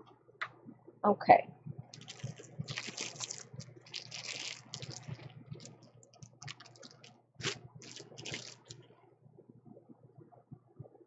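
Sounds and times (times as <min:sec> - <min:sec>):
paper towel wiping hands: 0:06.4 - 0:08.8.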